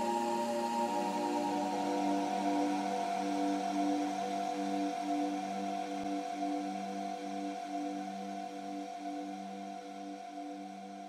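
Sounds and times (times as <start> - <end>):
ambient electronic music: 0.0 - 11.0.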